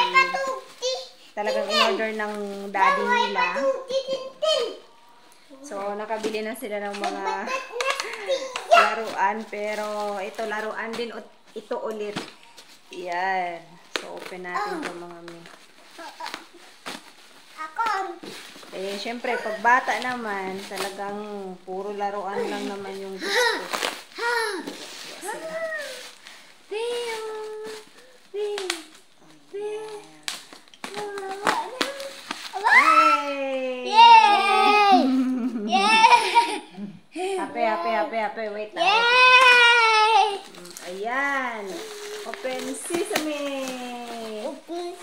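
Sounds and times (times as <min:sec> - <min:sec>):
woman's voice: 0:01.4 - 0:03.6, 0:05.6 - 0:07.5, 0:18.7 - 0:23.6, 0:37.1 - 0:39.2, 0:40.5 - 0:44.6
young child vocal sound: 0:07.3 - 0:09.1, 0:23.2 - 0:26.1, 0:31.0 - 0:36.8
person squealing high-pitched: 0:33.9 - 0:36.4.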